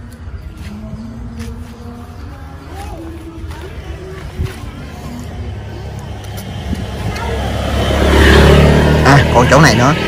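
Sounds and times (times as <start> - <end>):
road traffic rumble: 0.0 - 10.0
vehicle approaching: 0.0 - 10.0.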